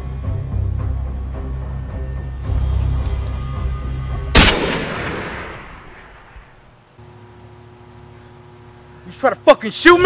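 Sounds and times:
dark music with low drone: 0.0 - 6.7
pistol shot with echo: 4.4 - 6.6.

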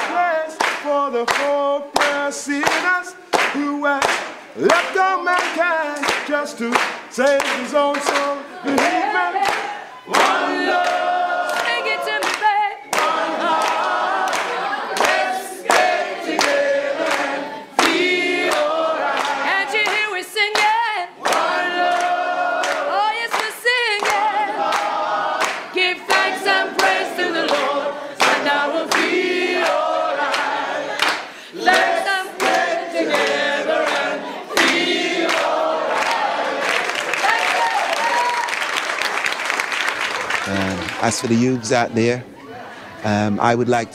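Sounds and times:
group singing in chorus: 0.0 - 37.4
hand claps: 0.0 - 41.2.

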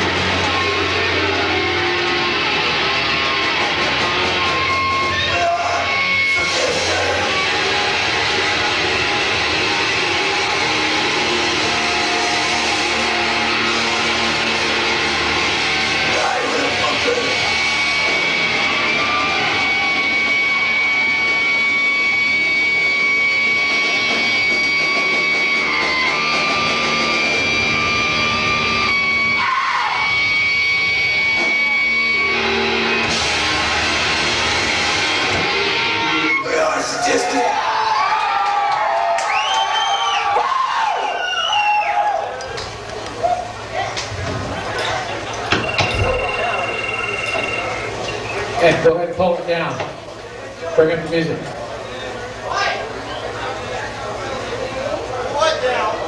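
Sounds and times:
shouted vocals: 0.0 - 14.1, 15.1 - 22.2, 29.3 - 30.3, 36.2 - 44.0
metal band playing loud: 0.0 - 38.3, 42.7 - 48.9
high steady tone: 45.5 - 48.6.

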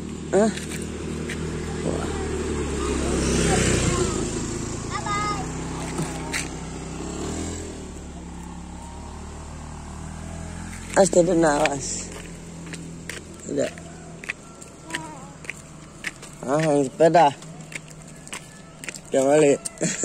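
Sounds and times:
motorcycle engine passing by: 0.0 - 20.0.

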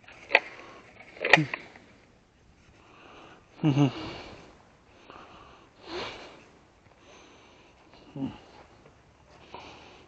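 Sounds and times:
person breathing through nose: 2.8 - 8.7, 9.3 - 10.0.

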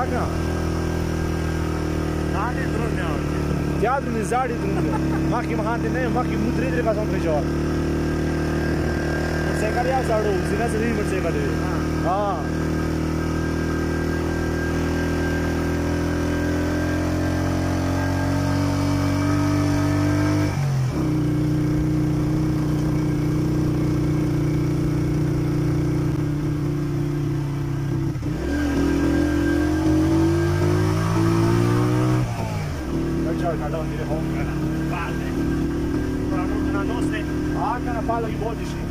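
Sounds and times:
vehicle engine running: 0.0 - 38.9.

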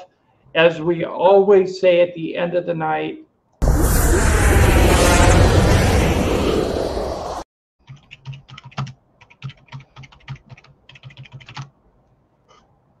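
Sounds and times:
loud rushing noise: 3.6 - 7.4
typing on computer keyboard: 7.8 - 11.7.

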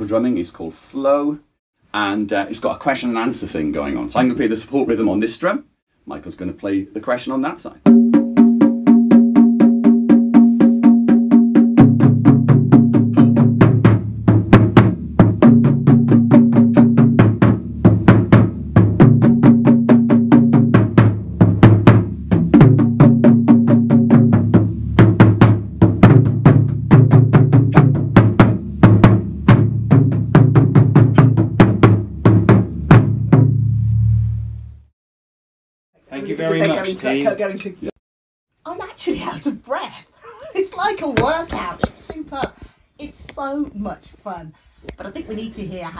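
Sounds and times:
taiko drums rhythm: 7.8 - 33.7.

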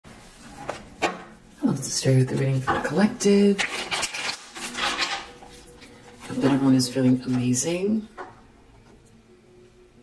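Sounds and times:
person speaking: 6.1 - 8.2.

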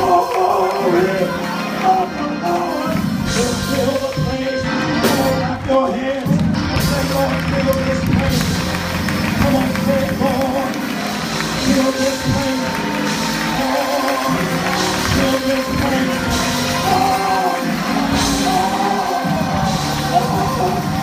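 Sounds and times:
band with steady beat: 0.0 - 21.0
person singing: 0.0 - 21.0.

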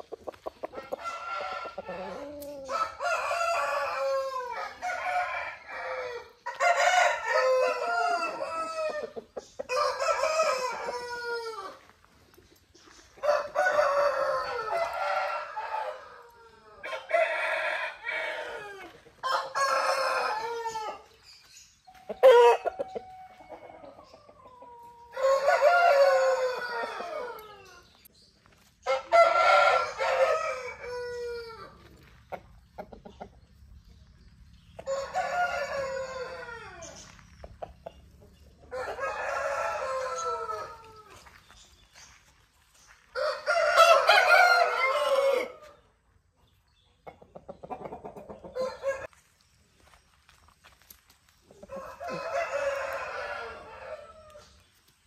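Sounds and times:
roosters crowing: 0.0 - 12.1, 13.2 - 21.2, 22.1 - 28.0, 28.8 - 32.2, 34.8 - 37.4, 38.3 - 41.4, 42.9 - 45.8, 48.2 - 49.2, 51.5 - 54.6.

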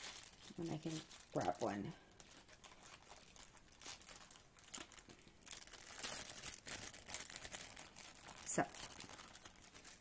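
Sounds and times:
crinkling and rustling: 0.0 - 10.0.

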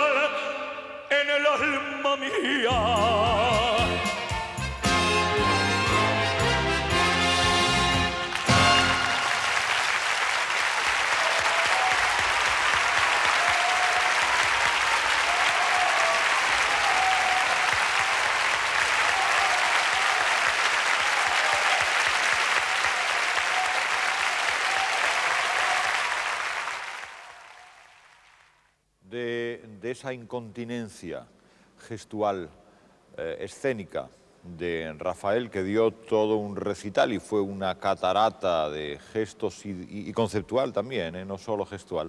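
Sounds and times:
audience applauding: 7.1 - 28.6.

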